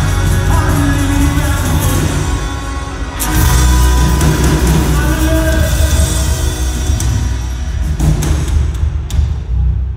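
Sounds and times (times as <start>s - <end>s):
electric and acoustic guitars: 0.0s - 8.5s
drum kit: 0.0s - 9.9s
keyboard: 0.0s - 9.9s.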